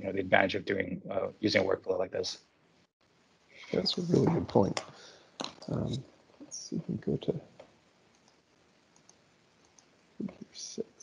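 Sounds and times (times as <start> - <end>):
faint mouse clicks: 9.0 - 9.9.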